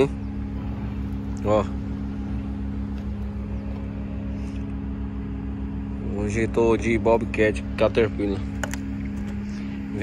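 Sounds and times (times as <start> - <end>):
diesel engine running steadily: 0.0 - 10.0.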